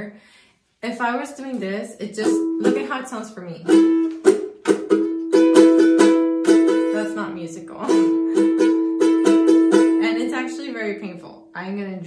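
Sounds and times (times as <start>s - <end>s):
ukulele strumming chord: 3.6s - 7.2s, 7.8s - 10.1s.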